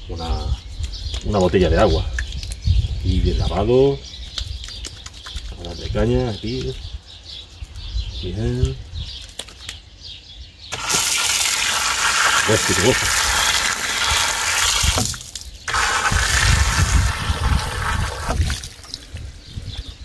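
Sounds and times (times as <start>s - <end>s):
tap water running onto hands: 10.7s - 19.0s.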